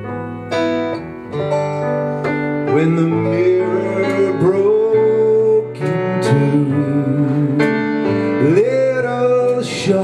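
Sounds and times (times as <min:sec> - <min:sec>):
man singing: 0:02.6 - 0:10.0.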